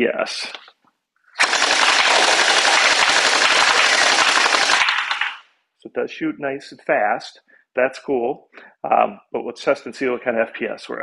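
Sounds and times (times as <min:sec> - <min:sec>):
toy blaster firing full-auto: 0:01.4 - 0:05.4.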